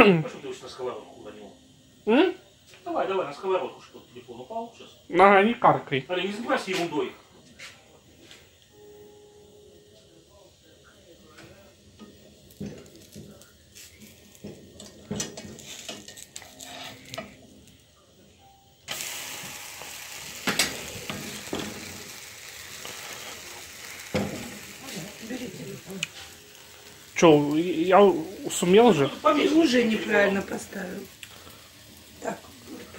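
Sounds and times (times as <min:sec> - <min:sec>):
loud sizzle: 0:00.0 - 0:32.9
batter frying in a pan: 0:10.8 - 0:17.9, 0:18.9 - 0:32.9.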